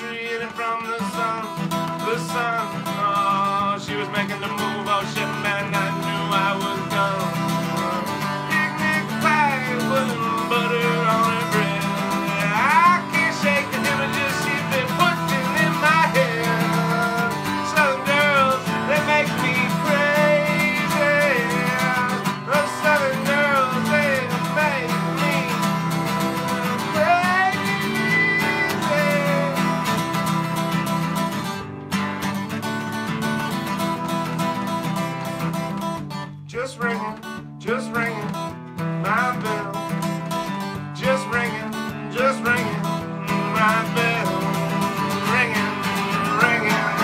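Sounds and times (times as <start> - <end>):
strummed acoustic guitar: 0.0 - 47.0
wordless wavering melody line: 43.0 - 47.0.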